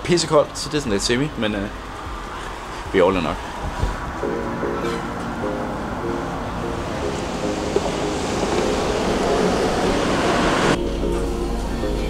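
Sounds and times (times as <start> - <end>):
traffic rushing on wet street: 0.0 - 10.8.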